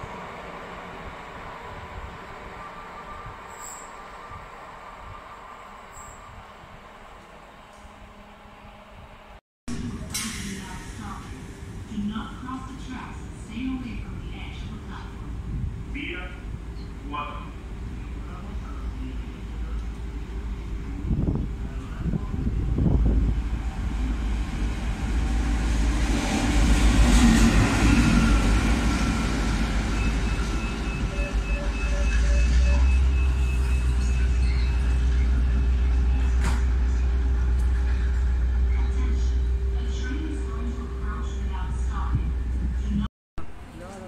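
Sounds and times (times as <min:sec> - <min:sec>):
locomotive engine and wheels rumbling: 0:00.0 - 0:44.0.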